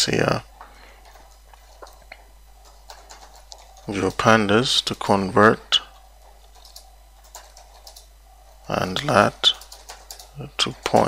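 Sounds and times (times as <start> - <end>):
computer keyboard typing: 1.0 - 4.4, 6.0 - 8.1, 8.8 - 11.0.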